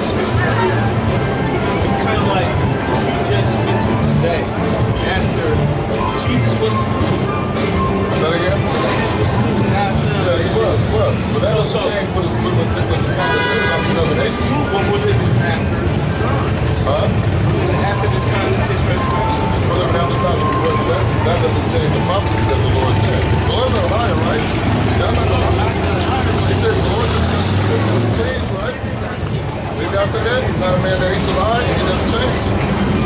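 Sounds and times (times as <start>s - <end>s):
low rumble of street traffic: 0.0s - 33.0s.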